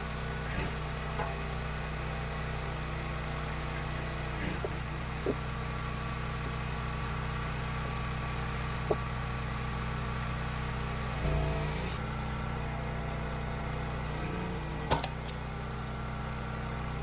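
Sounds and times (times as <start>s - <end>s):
small gas engine running: 0.0s - 17.0s.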